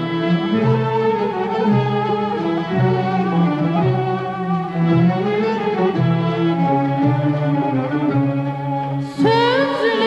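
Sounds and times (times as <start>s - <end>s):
bowed string ensemble: 0.0s - 10.0s
person singing: 9.0s - 10.0s.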